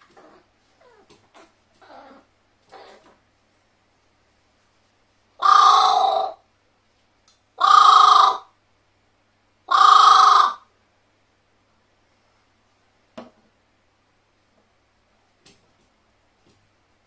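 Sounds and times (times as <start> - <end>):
crow cawing into metal tumbler: 7.6 - 8.4, 9.7 - 10.6.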